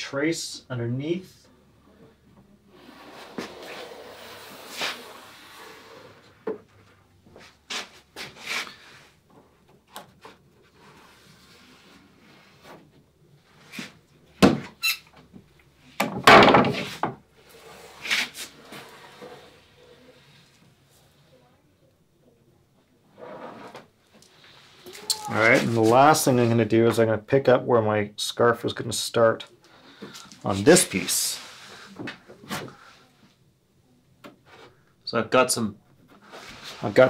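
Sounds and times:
scrape: 2.7 - 6.3, 7.4 - 9.2, 10.6 - 12.8, 13.5 - 14.0, 16.8 - 21.4, 23.2 - 26.0, 30.0 - 33.2, 36.2 - 37.0.

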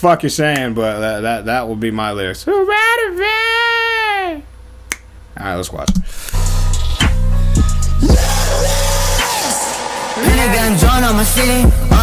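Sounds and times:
trap metal music: 6.4 - 12.0.

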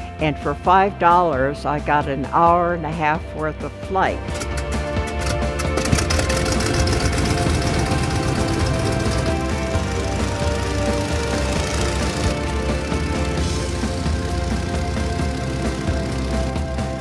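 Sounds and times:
background music: 0.0 - 17.0
biplane engine rumbling: 1.7 - 17.0.

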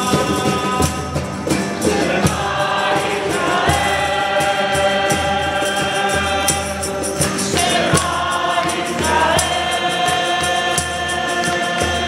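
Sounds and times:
congregation singing a hymn: 0.0 - 12.0
man leading singing: 0.0 - 12.0
strummed acoustic guitars: 0.0 - 12.0.

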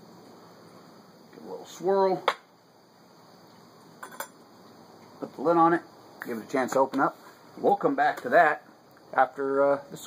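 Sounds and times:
glass clinking: 4.0 - 4.4.

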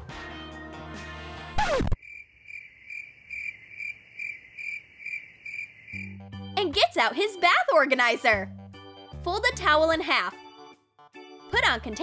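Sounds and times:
cricket chirping: 2.0 - 6.4.

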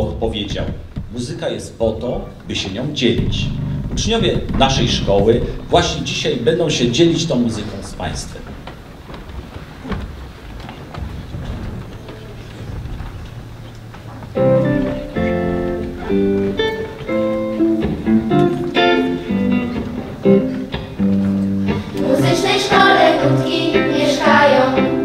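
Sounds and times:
instrumental introduction: 14.3 - 25.0
children's choir singing: 21.7 - 25.0.

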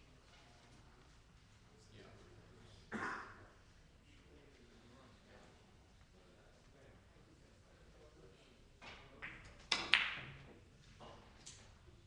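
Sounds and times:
billiard balls clicking: 9.2 - 10.4.

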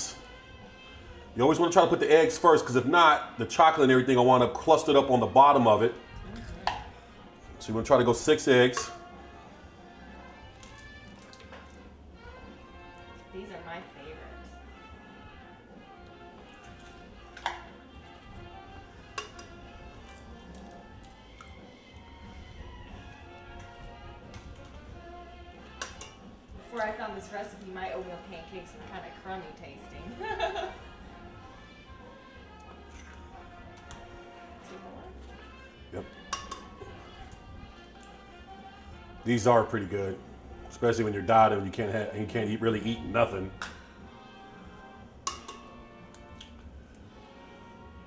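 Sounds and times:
quiet background music: 0.0 - 48.0
eggshell clicking on glass: 25.7 - 26.2, 36.2 - 36.7, 45.2 - 45.6.

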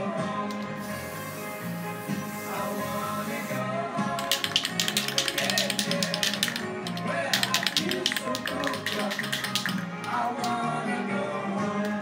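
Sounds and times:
music with singing: 0.0 - 12.0
spray paint can being shaken: 0.5 - 3.6, 4.2 - 10.5.

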